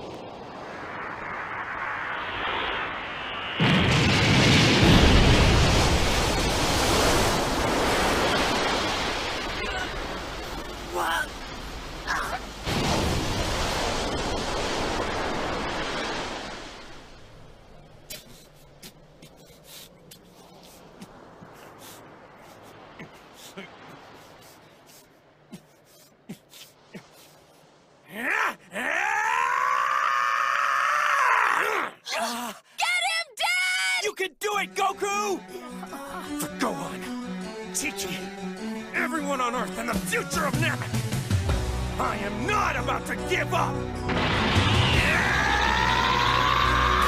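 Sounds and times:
man screaming: 28.1 - 34.2, 44.9 - 47.0.

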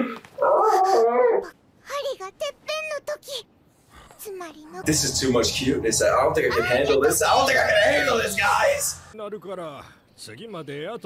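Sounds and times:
cartoon dog whining: 0.0 - 1.6.

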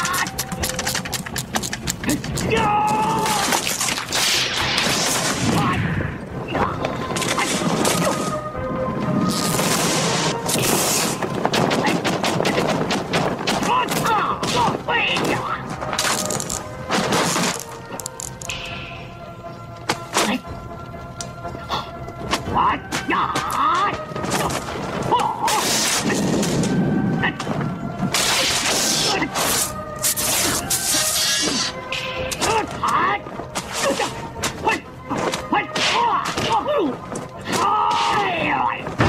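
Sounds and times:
fight soundtrack music: 22.3 - 37.5.

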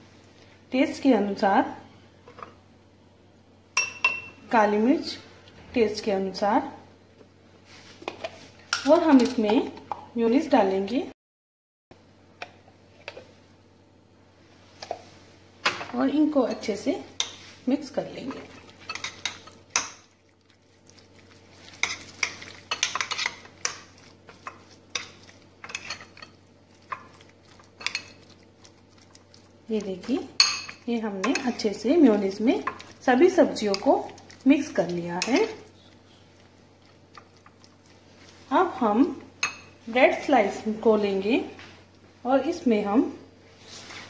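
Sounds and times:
spoon scraping glass bowl: 21.6 - 28.4.

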